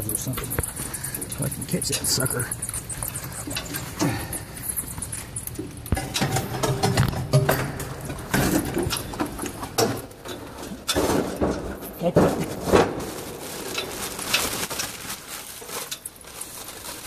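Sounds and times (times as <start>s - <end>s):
clicks and knocks: 5.5s - 12.9s.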